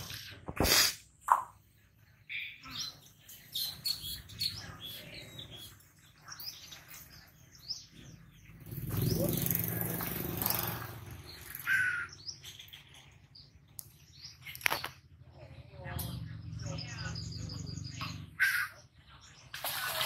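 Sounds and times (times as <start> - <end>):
small birds chirping: 0.0 - 20.0.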